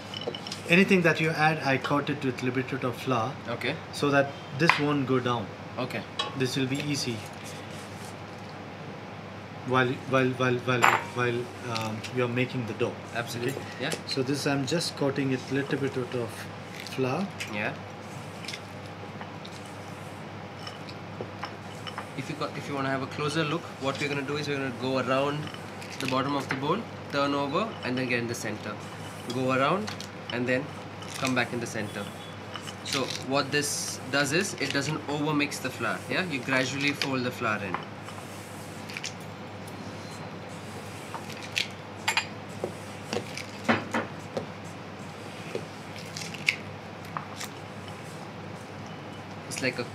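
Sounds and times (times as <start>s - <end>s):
steady low hum: 0.0s - 49.9s.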